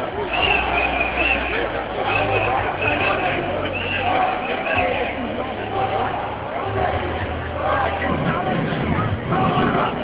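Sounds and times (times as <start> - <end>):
crowd voices talking: 0.0 - 10.0.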